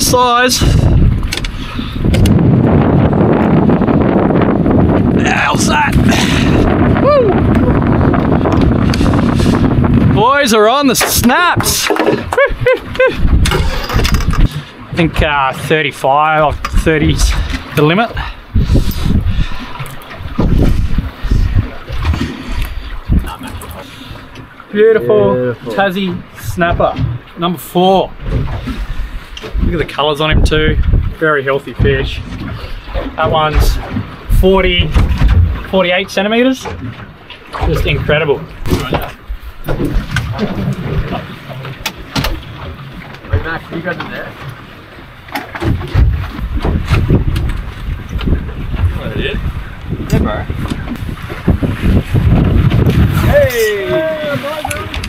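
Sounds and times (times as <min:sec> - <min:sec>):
water splashing against boat hull: 0:00.0 - 0:55.0
wind buffeting microphone: 0:00.0 - 0:55.0.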